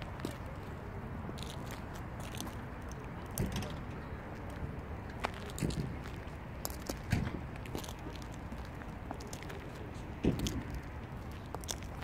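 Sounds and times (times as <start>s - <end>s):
footsteps crunching: 0.0s - 3.1s, 5.2s - 12.0s
low outdoor rumble: 0.0s - 12.0s.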